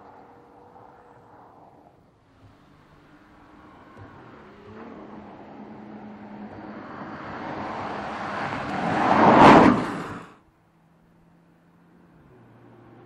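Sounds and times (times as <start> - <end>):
car approaching and passing: 0.0 - 13.0.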